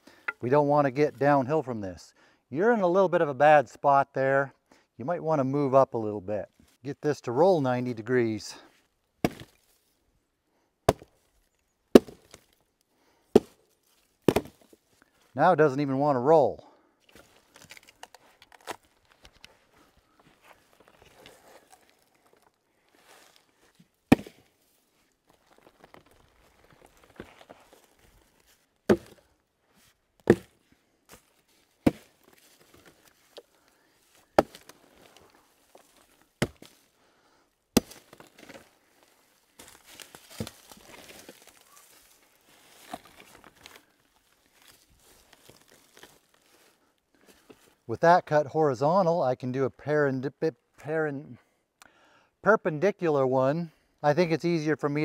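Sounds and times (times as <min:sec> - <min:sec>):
footsteps in dry forest litter: 0:13.5 - 0:15.4, 0:17.0 - 0:37.1, 0:37.8 - 0:47.9.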